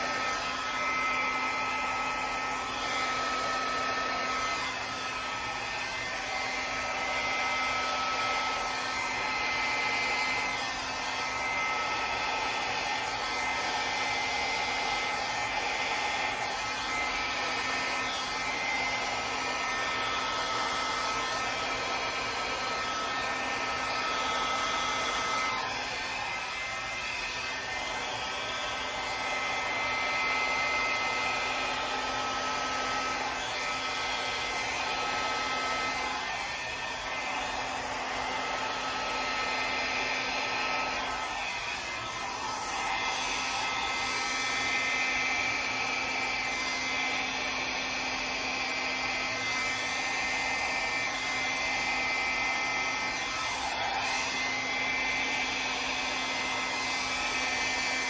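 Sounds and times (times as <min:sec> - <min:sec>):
hair dryer running: 0:00.0 - 0:58.0.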